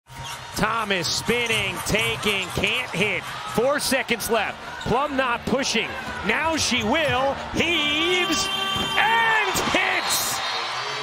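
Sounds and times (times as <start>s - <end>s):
arena crowd noise: 0.1s - 11.0s
commentator shouting excitedly: 0.9s - 10.4s.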